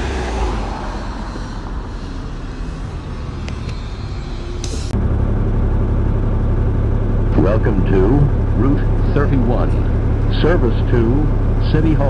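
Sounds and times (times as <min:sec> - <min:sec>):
bus engine rumble: 0:00.0 - 0:12.0.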